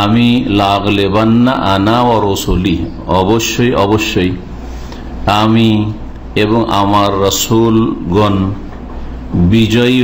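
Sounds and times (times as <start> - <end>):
man chanting melodically: 0.0 - 4.6, 5.2 - 8.7, 9.3 - 10.0.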